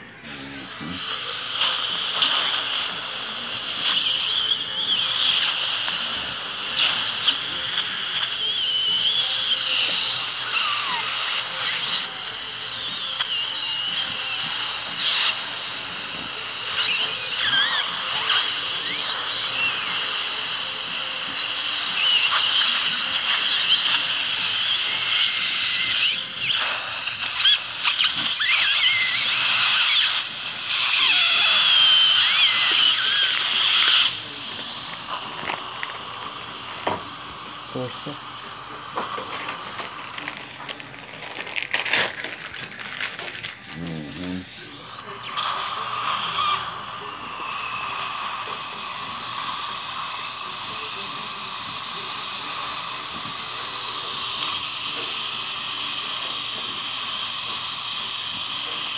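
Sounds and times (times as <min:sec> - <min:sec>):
dental drill hissing and whining: 0:00.1 - 0:58.9.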